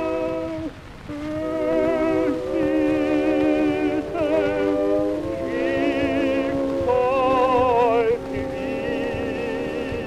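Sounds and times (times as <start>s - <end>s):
record surface crackle: 0.0s - 10.0s
tenor singing with vibrato: 0.0s - 10.0s
orchestral accompaniment: 1.0s - 10.0s.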